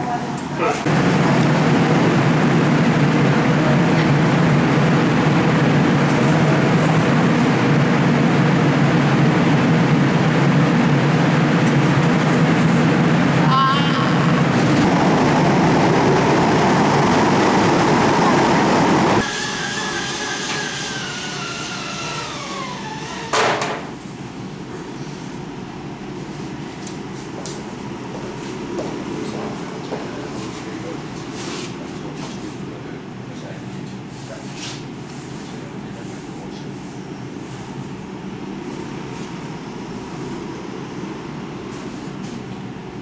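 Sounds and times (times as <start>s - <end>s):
machine hum: 0.0s - 32.1s
loud machine noise: 0.0s - 33.0s.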